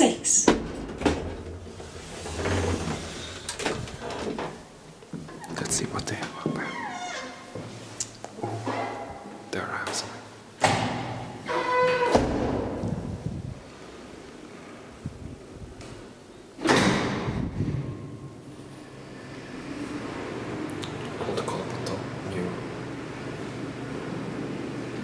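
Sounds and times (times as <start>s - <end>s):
elevator doors opening and shutting: 0.4s - 5.8s, 10.6s - 14.2s, 15.7s - 25.0s
door squeaking: 6.6s - 7.6s, 11.4s - 12.5s
loud door thuds: 10.6s - 12.9s, 16.6s - 17.9s.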